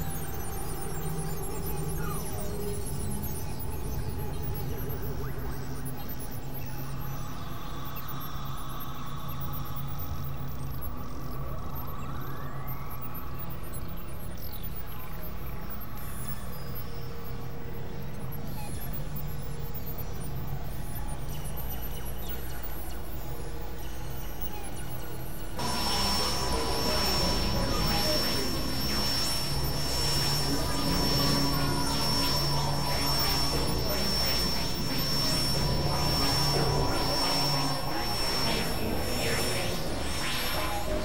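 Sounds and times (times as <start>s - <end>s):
synthesizer drone music: 25.6s - 41.0s.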